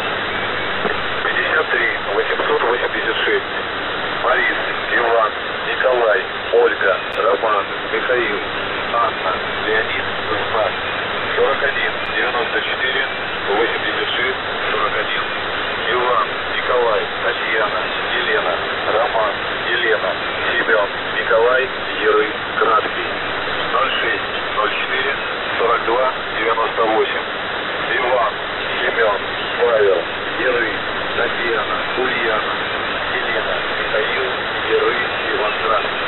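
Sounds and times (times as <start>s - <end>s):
garbled radio voices: 0.0s - 36.0s
radio static hiss: 0.0s - 36.0s.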